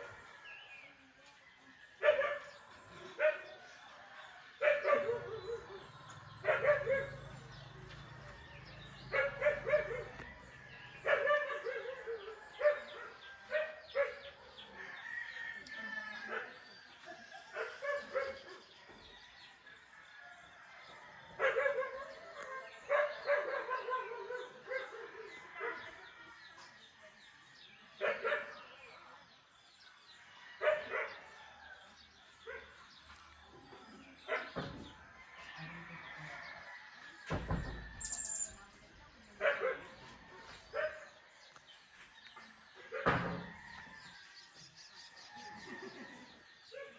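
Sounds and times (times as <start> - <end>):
dog barking: 2.0 - 3.7, 4.5 - 5.8, 6.4 - 7.5, 9.0 - 10.4, 11.0 - 14.7, 17.5 - 18.8, 21.4 - 26.0, 28.0 - 28.8, 30.6 - 31.4, 39.4 - 40.1, 40.7 - 41.2.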